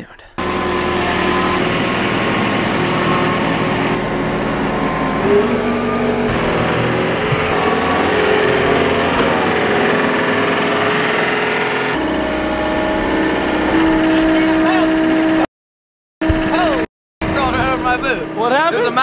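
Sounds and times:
diesel engine running: 0:00.4 - 0:15.5, 0:16.2 - 0:19.0.

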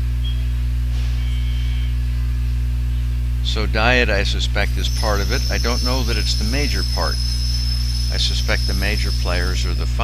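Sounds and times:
faint high whine: 0:00.0 - 0:10.0
loud mains hum: 0:00.0 - 0:10.0.

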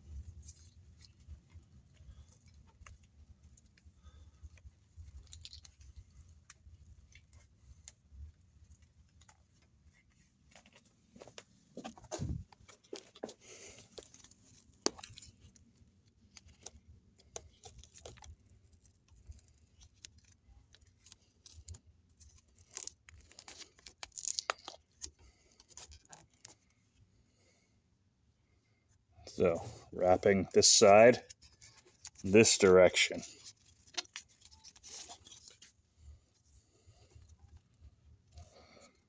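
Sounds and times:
tape rustling and peeling: 0:00.1 - 0:27.1, 0:29.6 - 0:39.0.

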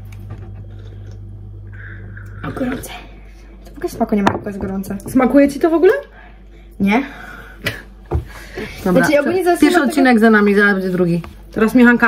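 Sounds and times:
women speaking: 0:02.4 - 0:07.4, 0:08.6 - 0:12.0.

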